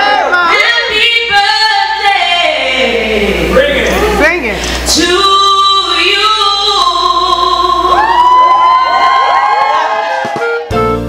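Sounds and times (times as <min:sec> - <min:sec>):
woman singing into a microphone: 0:00.5 - 0:08.4.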